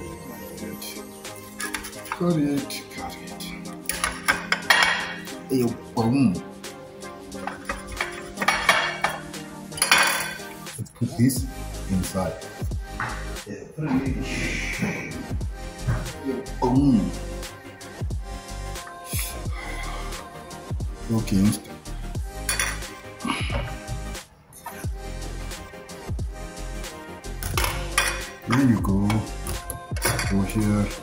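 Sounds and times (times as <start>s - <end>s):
background music with bass kick: 0.0s - 24.2s, 24.8s - 31.0s
cutlery clinking against plates: 1.4s - 2.2s, 3.8s - 5.3s, 7.4s - 10.6s, 22.5s - 23.0s, 27.4s - 30.5s.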